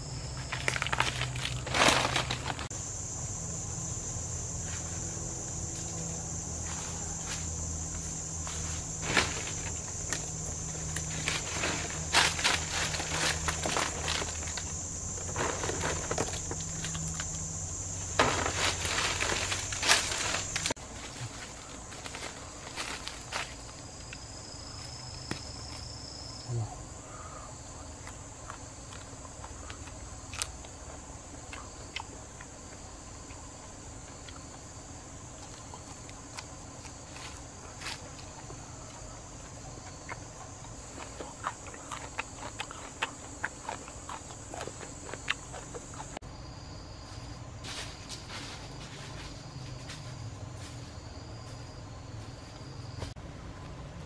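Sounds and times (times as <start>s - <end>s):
forest insects droning: 0.0s - 54.0s
footsteps in dry leaf litter: 0.4s - 2.7s, 6.6s - 17.4s, 18.0s - 24.0s.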